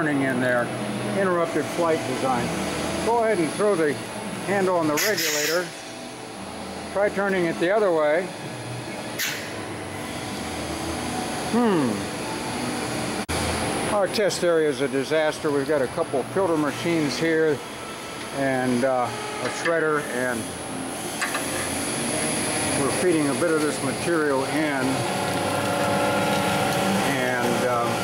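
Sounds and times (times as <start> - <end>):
screw press machine hum: 0.0 - 14.0, 14.6 - 28.0.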